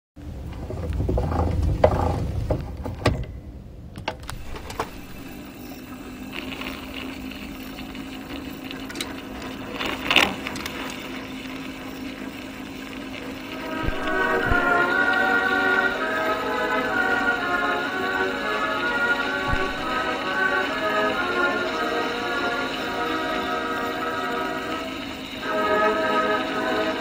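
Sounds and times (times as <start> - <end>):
phonograph low rumble: 0.2 - 24.7
phonograph running hum: 0.2 - 27.0.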